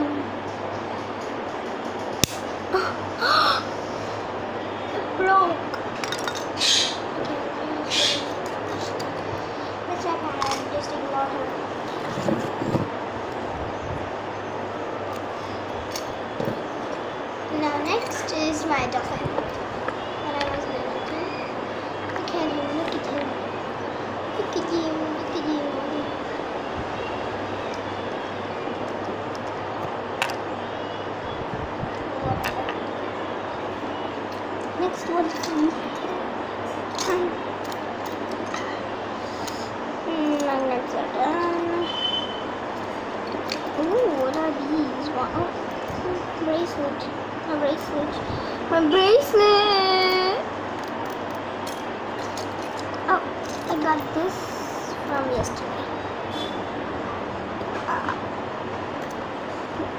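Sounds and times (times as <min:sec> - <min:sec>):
steady background hum: 0:00.0 - 0:59.9
harsh bird calls: 0:06.5 - 0:07.2, 0:07.8 - 0:08.8.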